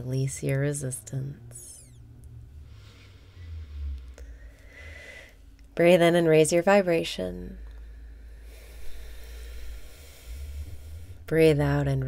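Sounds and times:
faint low hum: 0:00.0 - 0:12.0
person breathing in through nose: 0:02.6 - 0:05.4, 0:07.9 - 0:11.2.

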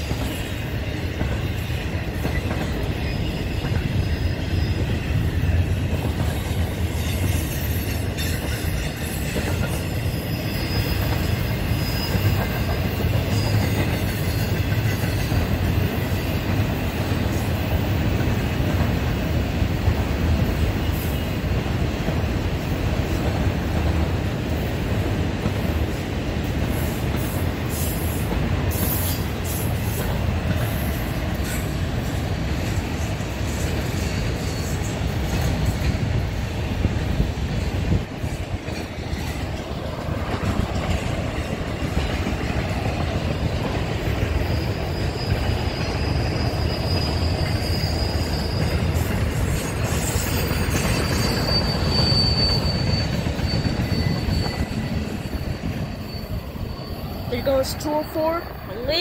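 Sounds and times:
train wheels rumbling on rail: 0:00.0 - 0:59.0
high wheel squeal: 0:02.4 - 0:05.6, 0:06.6 - 0:15.4, 0:34.0 - 0:35.0, 0:44.3 - 0:59.0.

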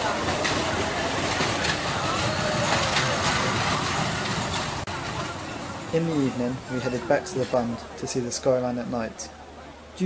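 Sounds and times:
roller coaster rumbling on track: 0:00.0 - 0:09.6.

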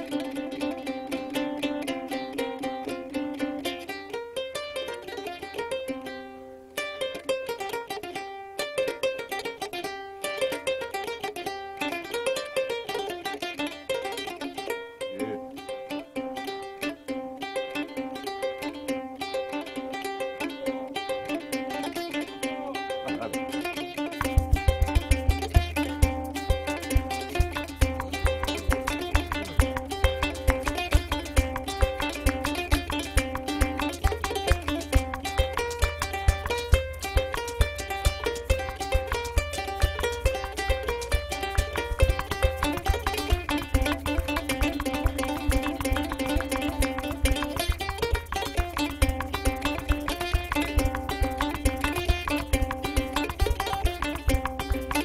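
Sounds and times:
plucked string instrument solo: 0:00.0 - 0:55.0
low regular beat: 0:19.0 - 0:55.0.

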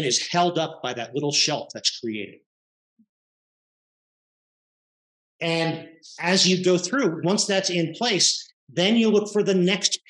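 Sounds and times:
person speaking: 0:00.0 - 0:02.4, 0:05.4 - 0:10.0.

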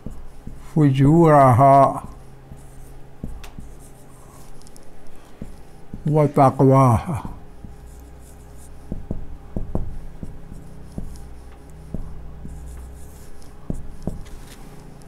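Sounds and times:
faint low room hum: 0:00.0 - 0:15.0
marker pen writing on whiteboard: 0:00.0 - 0:15.0.

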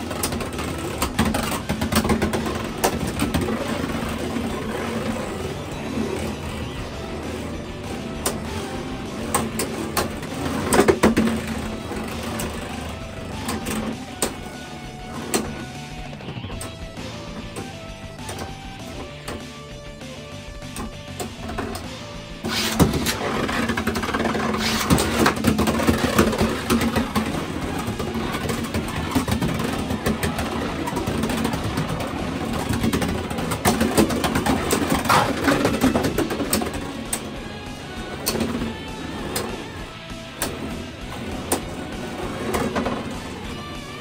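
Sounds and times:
spinning tops whirring on plastic: 0:00.0 - 0:19.7, 0:20.7 - 0:44.0
background music: 0:00.0 - 0:44.0.

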